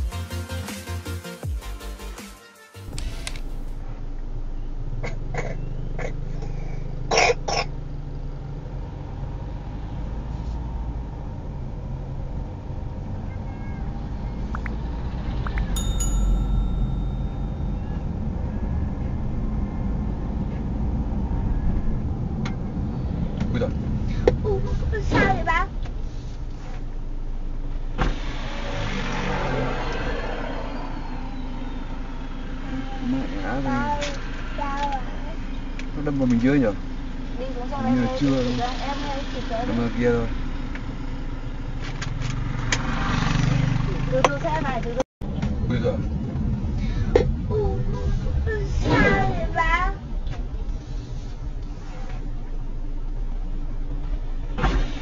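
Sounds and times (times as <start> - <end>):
car engine and road noise: 2.8 - 55.0.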